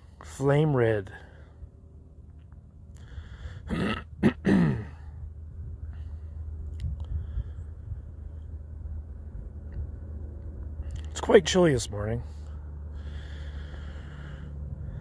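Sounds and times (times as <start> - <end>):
low outdoor rumble: 0.0 - 15.0
man clearing his throat: 3.7 - 5.0.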